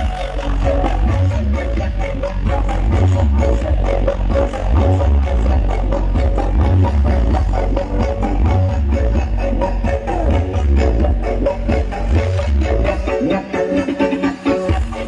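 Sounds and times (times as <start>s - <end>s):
heavy pulsing bass: 0.0s - 15.0s
loud electronic dance music: 0.0s - 15.0s.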